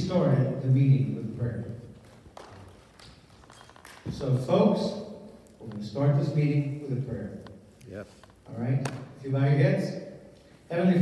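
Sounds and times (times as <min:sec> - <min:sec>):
footsteps on a stage: 0:01.7 - 0:04.6.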